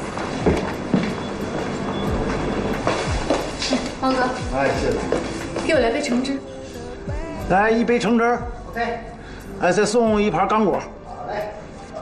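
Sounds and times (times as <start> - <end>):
footsteps low thuds: 0.0 - 6.3.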